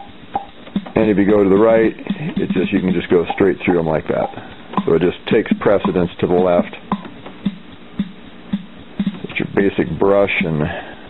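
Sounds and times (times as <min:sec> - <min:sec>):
organ rhythm unit drum pattern: 0:00.0 - 0:11.0.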